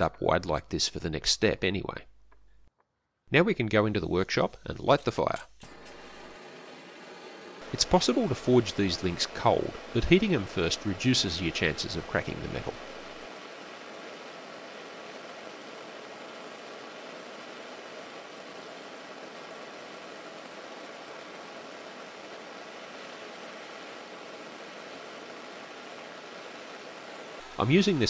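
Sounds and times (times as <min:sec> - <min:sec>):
gas torch hissing: 0:05.6 - 0:13.4.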